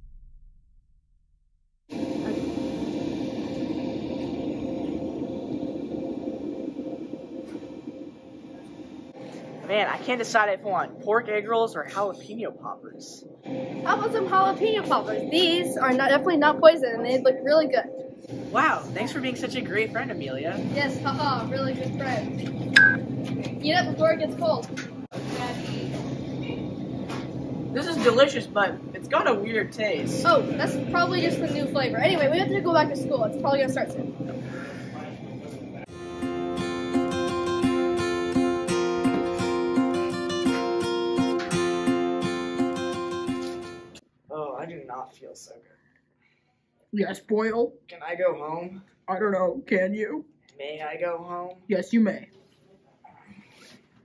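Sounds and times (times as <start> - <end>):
mechanical hum with faint whine: 1.9 - 39.6.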